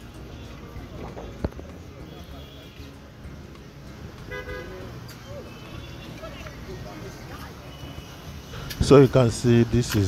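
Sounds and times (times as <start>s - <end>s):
faint voices: 0.0s - 10.0s
street traffic rumble: 0.0s - 10.0s
vehicle horn toot: 4.3s - 6.4s.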